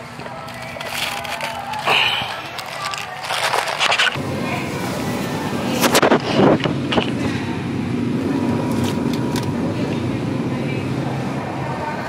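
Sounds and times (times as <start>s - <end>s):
low hum of supermarket: 0.0s - 12.0s.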